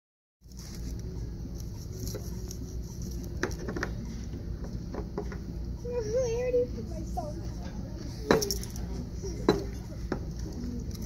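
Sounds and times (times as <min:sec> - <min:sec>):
low restaurant room rumble: 0:00.4 - 0:11.0.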